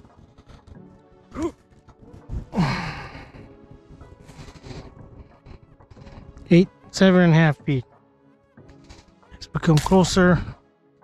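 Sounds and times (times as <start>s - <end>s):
faint background music: 0.0s - 11.0s
man sighing: 2.5s - 3.5s.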